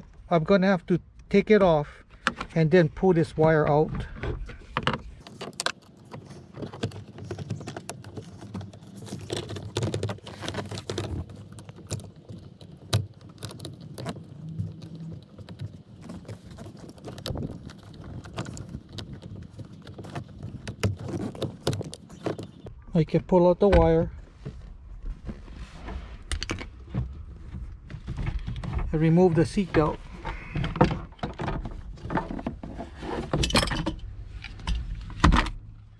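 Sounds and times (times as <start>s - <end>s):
screwdriver clicking and scraping plastic: 4.8s - 22.7s.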